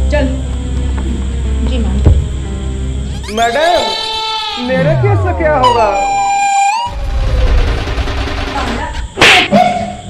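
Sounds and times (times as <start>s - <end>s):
whistle-like tone bending up: 4.6s - 7.7s.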